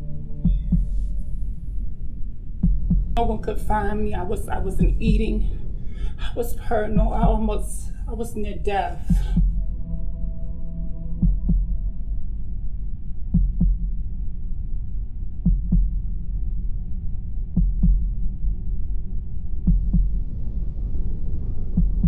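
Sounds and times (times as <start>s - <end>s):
slow heartbeat thumps: 0.0s - 10.1s, 11.1s - 12.5s, 13.2s - 14.4s, 15.4s - 16.8s, 17.4s - 18.8s, 19.5s - 22.0s
low droning hum: 0.0s - 22.0s.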